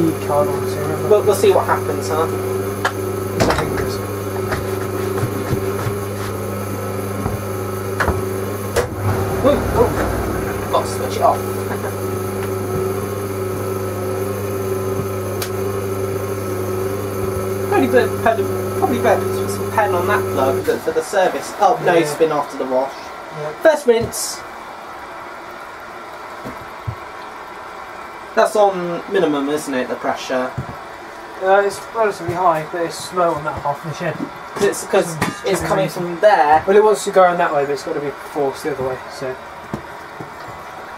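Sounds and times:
washing machine motor hum: 0.0 - 22.9, 23.5 - 40.9
washing machine drum knocks: 8.0 - 12.0
low thumps: 8.1 - 13.0.

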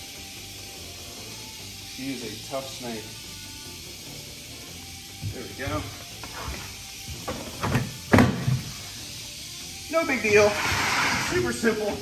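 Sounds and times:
knocks on plastic trash can: 7.3 - 8.6.

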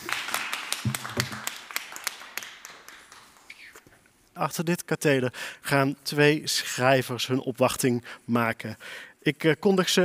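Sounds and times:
people clapping: 0.0 - 3.8.

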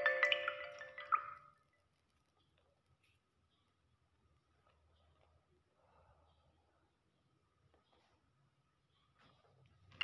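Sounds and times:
mallet-like keyboard notes: 0.0 - 1.4.

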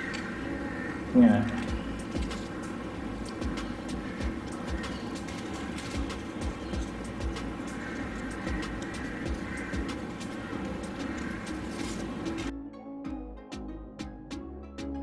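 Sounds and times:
steady background hum: 0.0 - 12.5
paper rustling and clicking: 4.4 - 9.2, 10.2 - 12.5.

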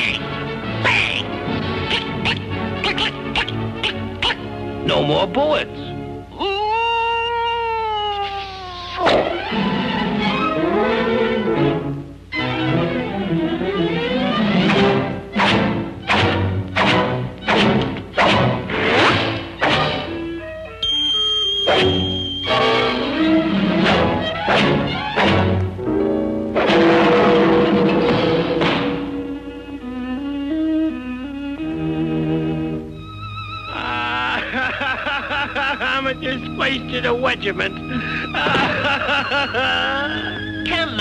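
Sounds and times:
orchestral cartoon music: 0.0 - 6.5, 8.9 - 41.0
high steady tone: 20.8 - 22.8.

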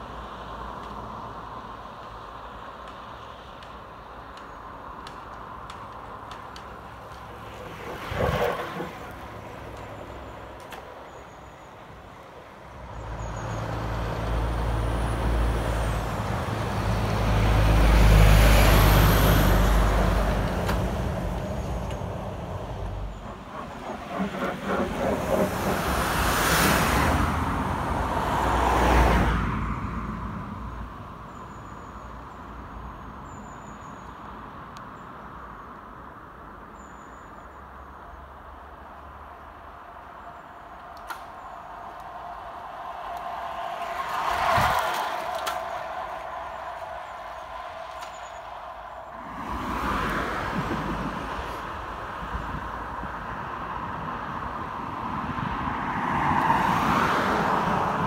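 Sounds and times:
vehicle passing: 12.9 - 30.8, 39.2 - 58.0
lorry passing by: 39.2 - 54.7.

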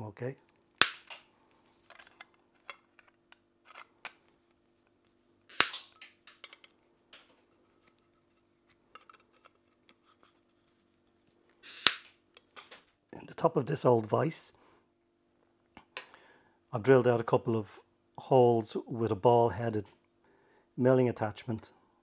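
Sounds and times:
pliers snapping rivet shanks: 5.5 - 6.7.

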